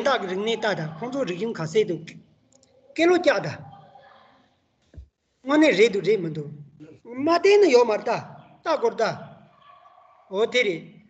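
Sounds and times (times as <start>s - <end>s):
person speaking over video call: 0.0s - 4.2s, 5.0s - 11.0s.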